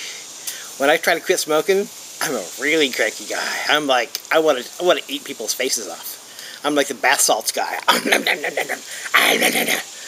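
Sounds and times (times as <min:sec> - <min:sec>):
man growling and snarling: 0:07.9 - 0:09.9.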